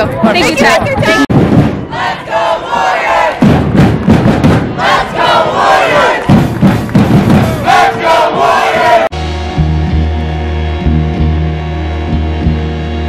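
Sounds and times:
crowd shouting and chanting: 0.0 - 10.3.

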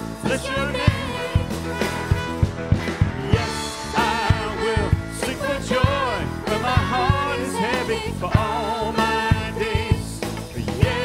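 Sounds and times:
piano: 0.0 - 11.0
steady drum beat: 0.0 - 11.0
trumpet: 0.7 - 7.5.

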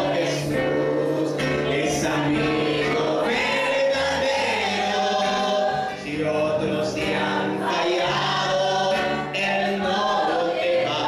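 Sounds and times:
congregation singing: 0.0 - 11.0.

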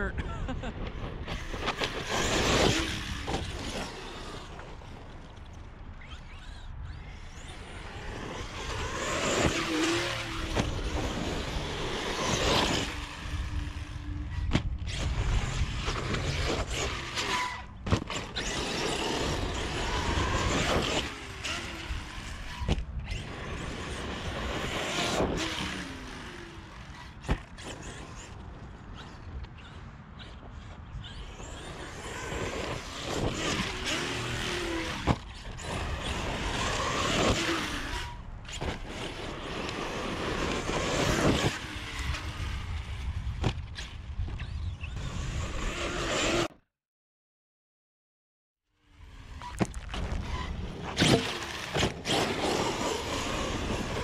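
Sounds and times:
electric motor whining: 0.6 - 5.0, 6.0 - 30.3, 31.0 - 46.5, 48.9 - 54.0.

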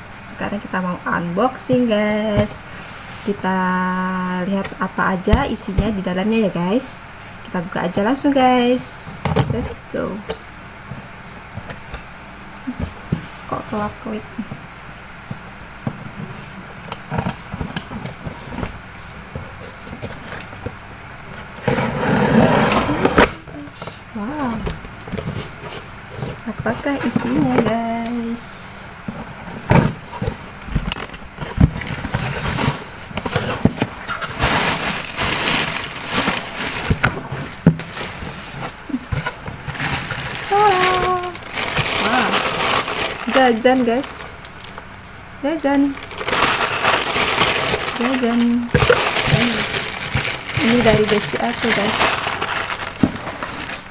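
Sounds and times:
thin plastic bag rustling: 34.0 - 38.6, 39.6 - 44.8, 45.8 - 53.9
packing tape tearing: 39.7 - 44.8, 45.8 - 53.9.

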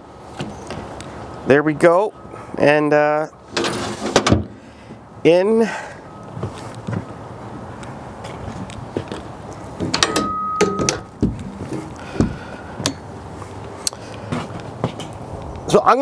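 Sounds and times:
metal door clanking shut: 3.6 - 4.5, 9.8 - 11.4
dull thumps: 10.6 - 12.5.

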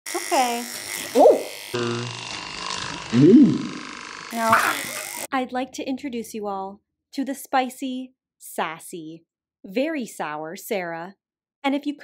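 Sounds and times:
vocal sound rising and falling: 3.1 - 3.8.

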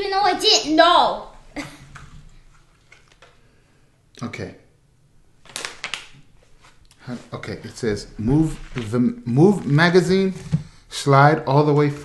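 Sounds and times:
packaging rustling and crinkling: 5.4 - 7.4.

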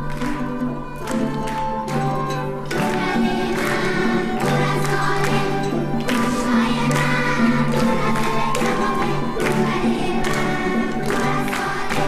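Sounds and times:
children's choir singing: 0.0 - 12.0
instrumental accompaniment: 0.0 - 12.0.

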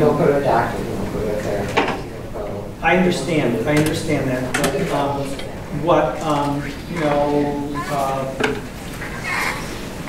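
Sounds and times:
low talk: 0.0 - 9.5
squeaky chair creaking: 8.9 - 9.8.

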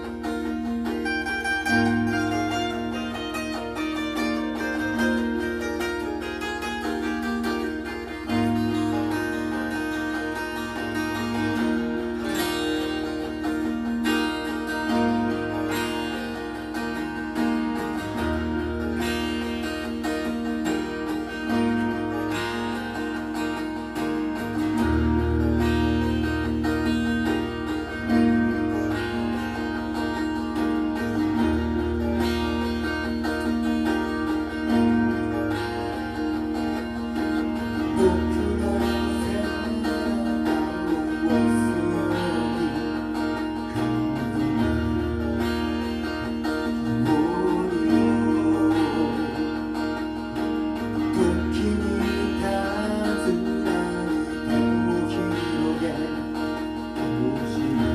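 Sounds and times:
acoustic guitar chords: 0.0 - 57.9.

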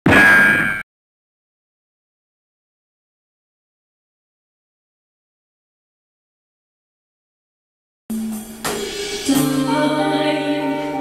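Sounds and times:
loud metallic clang: 0.0 - 0.8.

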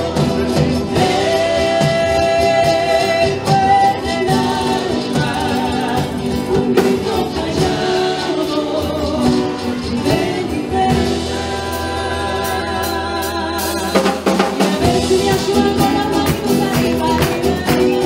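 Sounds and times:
charango and guitar strumming: 0.0 - 18.0
hand percussion: 0.0 - 18.0.

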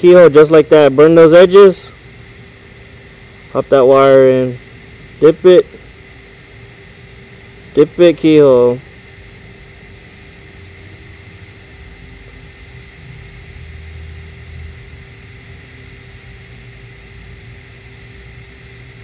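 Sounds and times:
faint steady hum: 0.0 - 19.0
welding arc hissing: 0.0 - 19.0.

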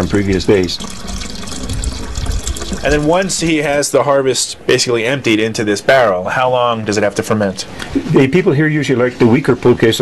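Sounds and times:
liquid pouring through a strainer: 0.0 - 3.5.

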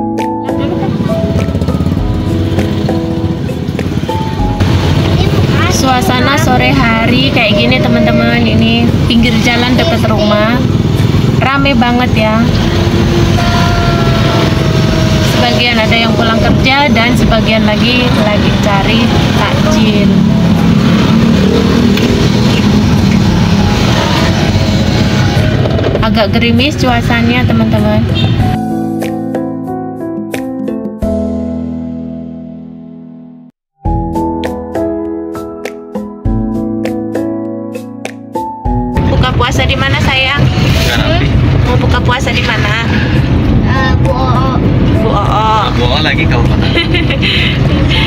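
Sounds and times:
people talking: 0.4 - 1.3, 5.0 - 10.7, 11.4 - 12.6, 13.4 - 14.4, 15.3 - 20.2, 26.0 - 28.2, 39.0 - 48.0
car engine and road hum: 0.8 - 28.5
tyres on wet road: 3.6 - 28.4, 39.0 - 48.0.

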